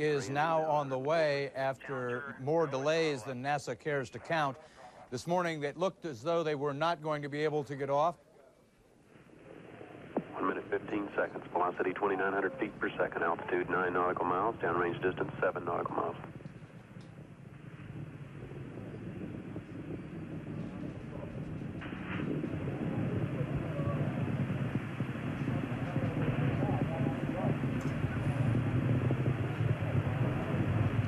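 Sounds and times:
distant rocket exhaust rumble: 0:08.5 - 0:31.0.

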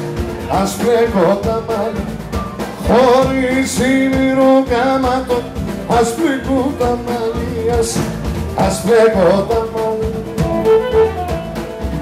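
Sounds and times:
person singing with folk band: 0:00.0 - 0:12.0
steady drum beat: 0:00.0 - 0:12.0.

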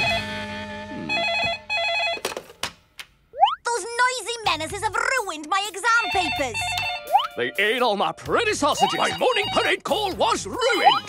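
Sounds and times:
telephone ringing: 0:01.1 - 0:02.5, 0:05.9 - 0:07.2, 0:08.8 - 0:10.0
voices talking on phone: 0:03.7 - 0:07.6, 0:08.5 - 0:11.0.

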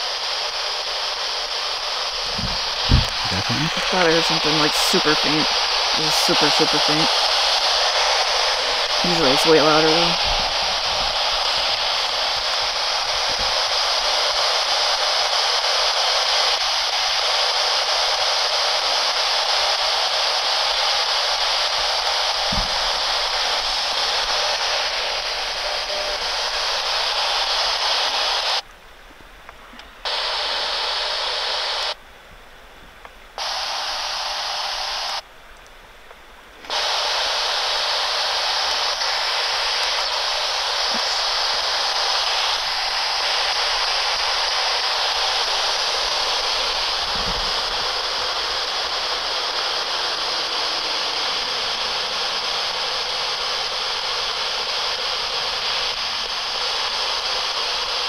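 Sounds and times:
radio static hissing: 0:00.0 - 0:32.0, 0:32.9 - 0:58.0.

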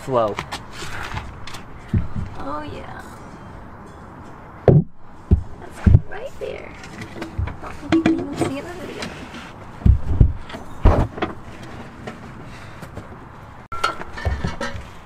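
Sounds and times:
exhaust pipe thumps and knocks: 0:01.2 - 0:02.4, 0:04.6 - 0:06.3, 0:06.9 - 0:08.6, 0:09.8 - 0:11.4, 0:13.8 - 0:15.0.

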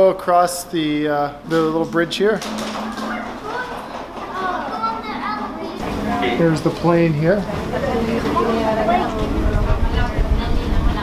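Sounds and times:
children talking: 0:02.2 - 0:11.0.

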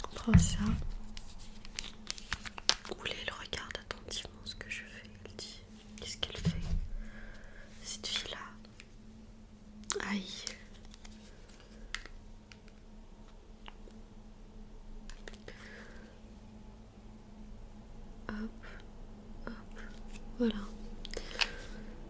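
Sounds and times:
person whispering: 0:02.9 - 0:06.8, 0:07.8 - 0:08.7, 0:09.9 - 0:10.8, 0:18.2 - 0:18.8, 0:19.4 - 0:21.6.

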